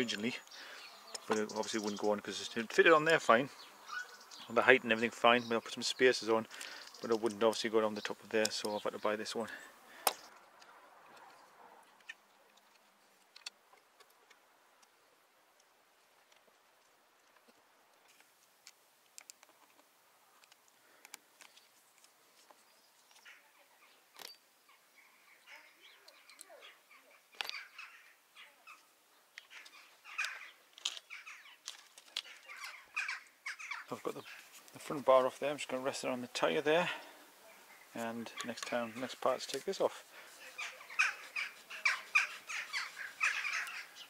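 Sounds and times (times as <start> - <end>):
bird calls: 0.0 - 12.7, 22.4 - 44.0.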